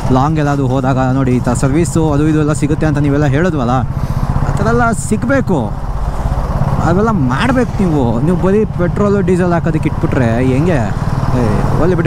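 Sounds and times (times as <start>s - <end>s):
rider talking: 0.0s - 5.9s, 6.6s - 12.0s
motorcycle engine rumbling: 0.0s - 12.0s.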